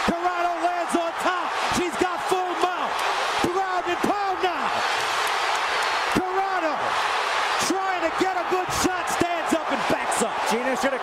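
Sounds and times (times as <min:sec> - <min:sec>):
arena crowd noise: 0:00.0 - 0:11.0
people yelling: 0:00.0 - 0:11.0.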